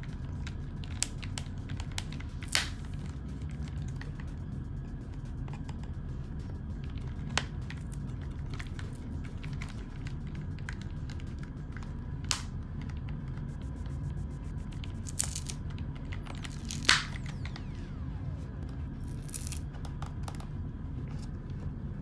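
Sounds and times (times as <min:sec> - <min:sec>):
steady low hum: 0:00.0 - 0:22.0
plastic clicks and snaps: 0:00.4 - 0:03.1, 0:09.5 - 0:13.1.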